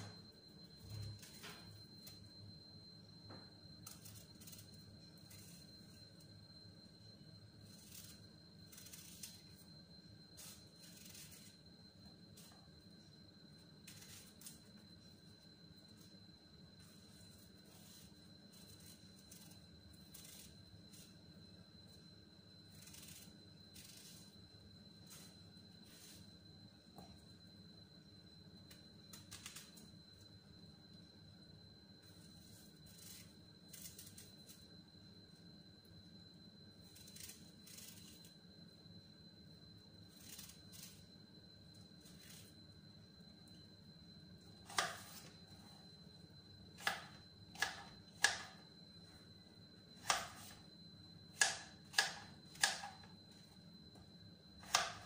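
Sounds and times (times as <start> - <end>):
low room hum: 0.0 - 55.0
knife scraping apple skin: 7.6 - 9.6, 10.4 - 11.6, 44.6 - 45.4, 46.8 - 48.6, 50.0 - 50.6, 51.4 - 52.9, 54.6 - 55.0.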